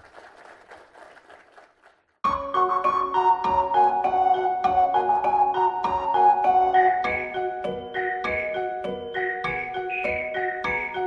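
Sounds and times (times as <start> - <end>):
audience applauding: 0.0 - 2.2.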